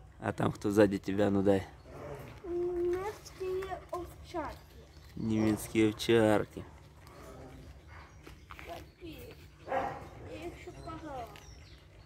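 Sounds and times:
dogs barking and yipping: 0:01.7 - 0:12.0.

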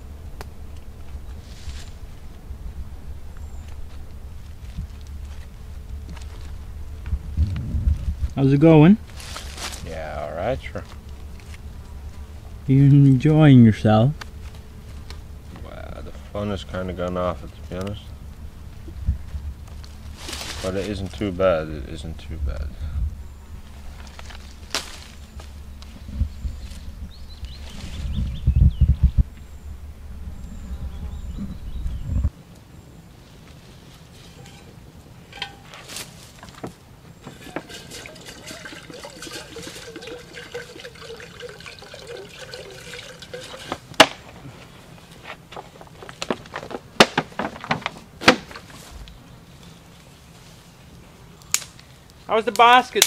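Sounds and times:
low rumble with thumps: 0:02.1 - 0:09.7, 0:14.4 - 0:32.3
liquid pouring into a pot: 0:37.5 - 0:43.8
sharp snaps: 0:51.4 - 0:51.9.

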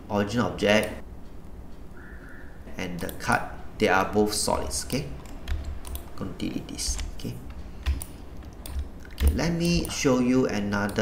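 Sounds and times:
keyboard and mouse clicks: 0:02.6 - 0:11.0.

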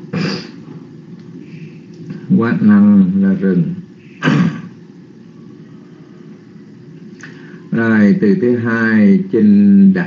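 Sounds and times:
low hum and hiss: 0:00.0 - 0:10.0.

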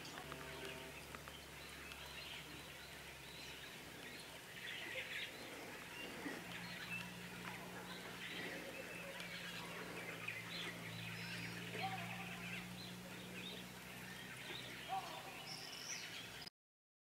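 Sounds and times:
steady low hum: 0:00.0 - 0:16.4
small birds chirping: 0:00.0 - 0:16.5.

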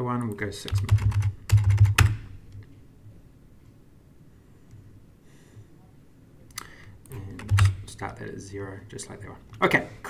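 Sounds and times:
computer keyboard typing: 0:00.6 - 0:02.2, 0:07.1 - 0:07.8.

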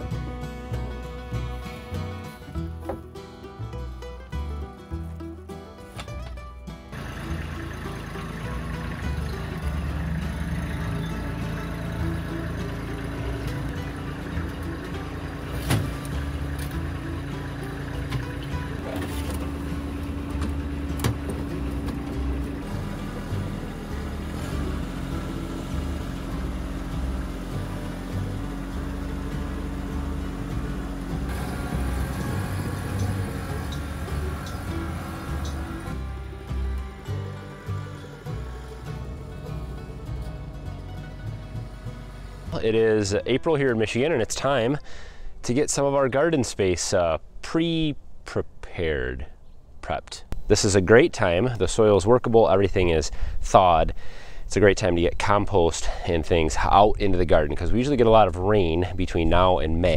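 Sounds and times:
tractor diesel engine running: 0:00.0 - 0:45.3.

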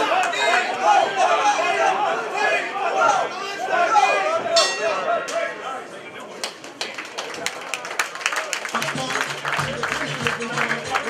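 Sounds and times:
spectators shouting: 0:00.0 - 0:05.9
ring bell strike: 0:04.6 - 0:05.1
people clapping: 0:06.3 - 0:11.0.

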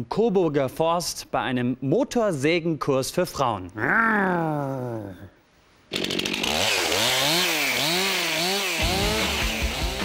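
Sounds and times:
chainsaw revving: 0:05.9 - 0:10.0.

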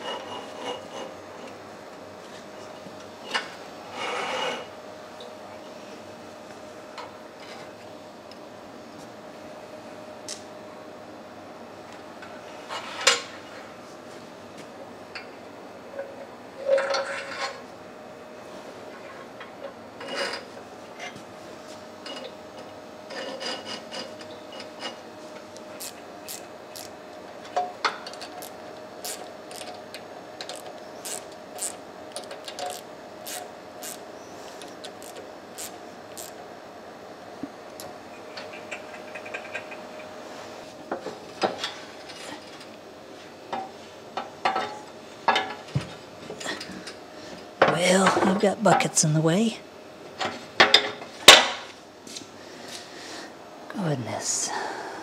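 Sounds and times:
socket ratchet clicking: 0:30.4 - 0:34.0, 0:34.8 - 0:36.4.

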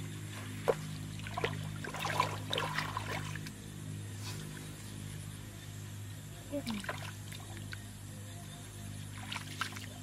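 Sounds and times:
low hum: 0:00.0 - 0:10.0
hands sloshing in muddy water: 0:00.4 - 0:03.6, 0:09.1 - 0:10.0.

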